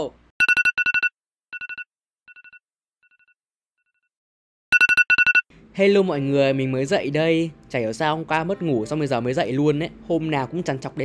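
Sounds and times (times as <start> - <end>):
phone alarm electronic beeps: 0.4 - 2.6, 4.7 - 5.4.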